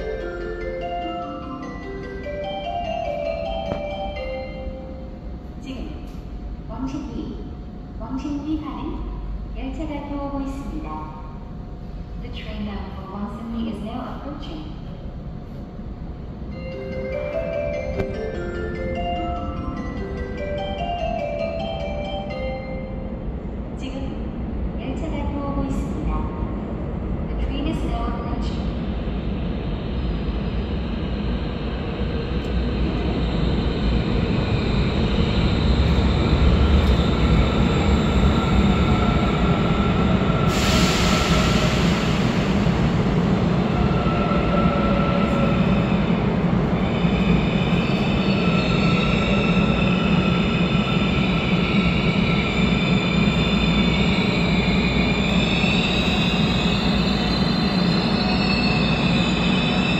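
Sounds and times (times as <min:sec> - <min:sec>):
electric train rumbling: 0:00.0 - 0:59.9
train brakes squealing: 0:40.2 - 0:42.5, 0:46.8 - 0:59.9.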